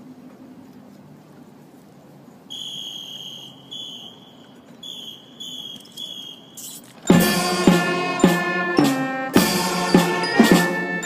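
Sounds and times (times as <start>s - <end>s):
faint outdoor background noise: 0.0s - 11.0s
high whistle blasts: 2.5s - 6.8s.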